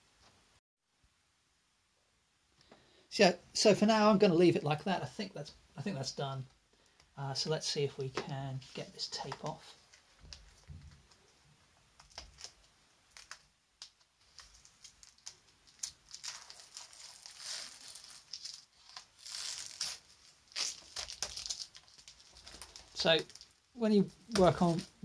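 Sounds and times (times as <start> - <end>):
tape peeling off paper: 12.0 - 23.6.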